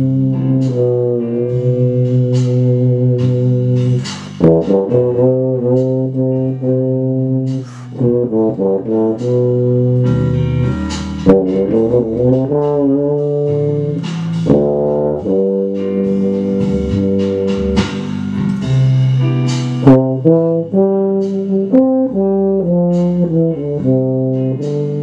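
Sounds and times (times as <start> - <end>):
tuba playing jazz melody: 0.0 - 25.0.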